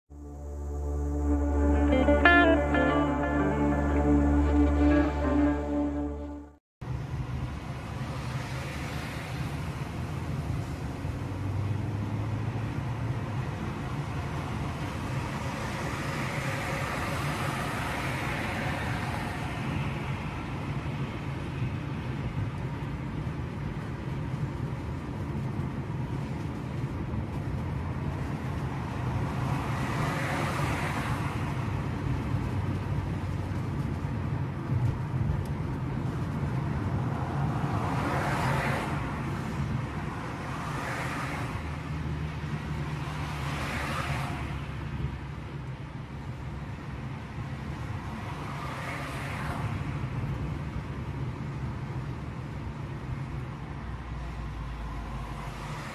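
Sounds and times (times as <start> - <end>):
car engine and road noise: 0.1 - 55.9
vehicles passing: 0.1 - 55.9.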